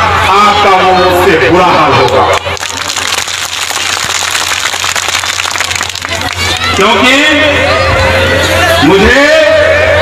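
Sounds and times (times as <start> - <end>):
crowd applauding: 2.0 - 7.1.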